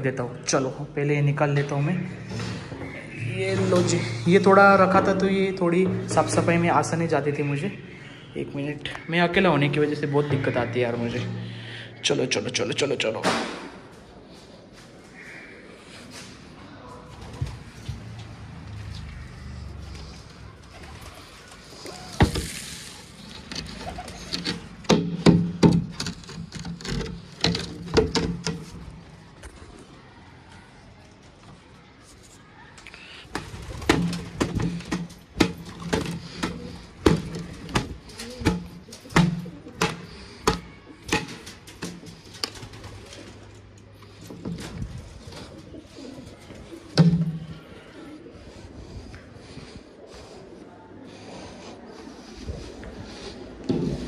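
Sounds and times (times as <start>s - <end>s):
pigeons cooing: 15.2s - 28.9s, 33.3s - 54.0s.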